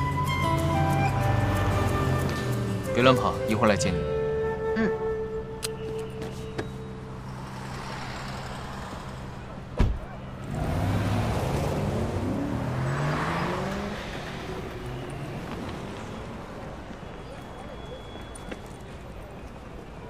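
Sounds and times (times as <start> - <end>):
street noise: 0.0 - 20.0
car engine accelerating: 7.1 - 18.2
car door shutting: 9.7 - 10.2.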